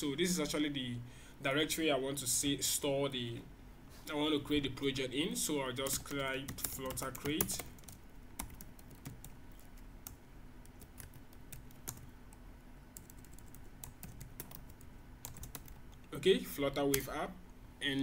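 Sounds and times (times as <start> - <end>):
typing on computer keyboard: 5.8 - 12.1, 13.0 - 15.8.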